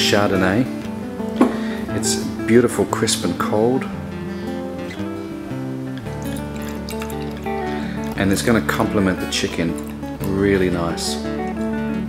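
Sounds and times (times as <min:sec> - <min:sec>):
acoustic guitar music: 0:00.0 - 0:12.0
wine pouring into a glass: 0:04.9 - 0:11.3.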